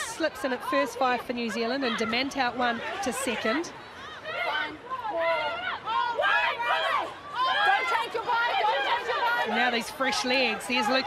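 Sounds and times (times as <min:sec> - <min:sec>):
players shouting short calls: 0:00.0 - 0:11.0.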